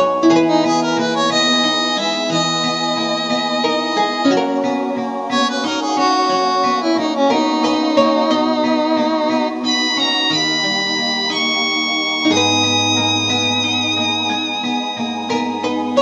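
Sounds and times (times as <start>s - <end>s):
karaoke backing music: 0.0s - 16.0s
keyboard melody: 0.0s - 16.0s.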